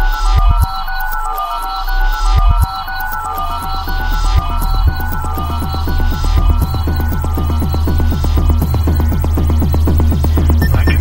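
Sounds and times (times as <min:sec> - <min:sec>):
falling-pitch synth blips: 0:00.6 - 0:11.0
deep bass drone: 0:03.3 - 0:11.0.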